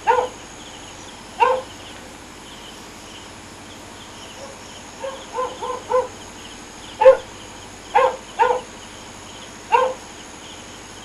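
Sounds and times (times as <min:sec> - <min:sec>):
dog barking: 0:00.0 - 0:00.4, 0:01.4 - 0:01.7, 0:04.3 - 0:06.2, 0:07.0 - 0:07.3, 0:07.9 - 0:08.7, 0:09.7 - 0:10.0
night insects chirping: 0:00.0 - 0:11.0.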